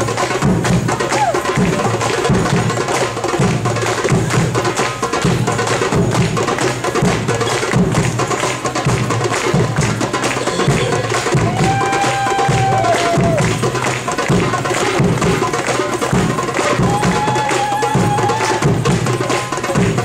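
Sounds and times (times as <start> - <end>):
hand drums playing dance rhythm: 0.0 - 20.0.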